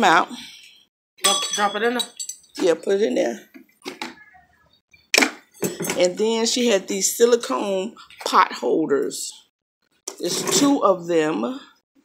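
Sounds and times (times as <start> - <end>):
clatter of household objects: 0.6 - 4.2, 5.0 - 6.4, 10.1 - 10.9.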